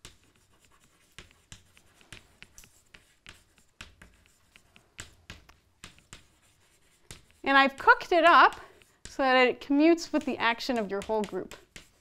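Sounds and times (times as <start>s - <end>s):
chalk writing on blackboard: 0.0s - 12.0s.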